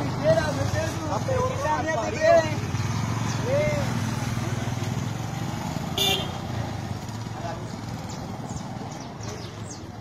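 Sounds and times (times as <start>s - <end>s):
motorcycle engine rumbling: 0.0s - 10.0s.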